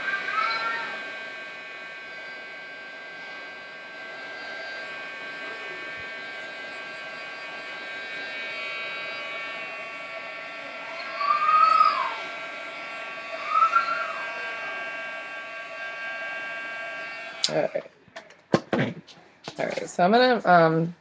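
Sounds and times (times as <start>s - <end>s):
heat tool blowing: 0.0s - 17.9s.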